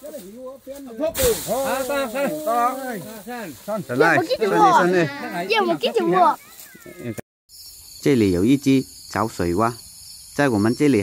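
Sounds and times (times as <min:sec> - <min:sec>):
voices talking: 0:00.0 - 0:07.2, 0:10.4 - 0:11.0
hissing burst: 0:01.1 - 0:03.4.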